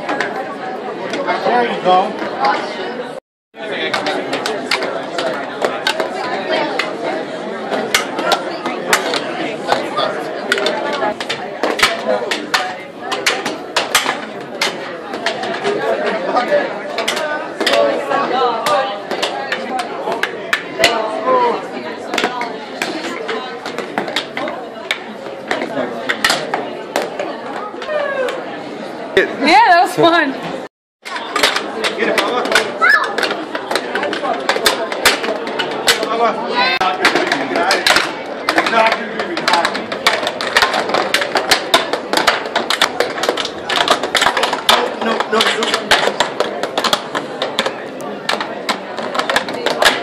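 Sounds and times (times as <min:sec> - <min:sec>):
crowd chatter: 0:00.0 - 0:50.0
hockey sticks and puck clacking: 0:03.6 - 0:28.4, 0:31.0 - 0:50.0.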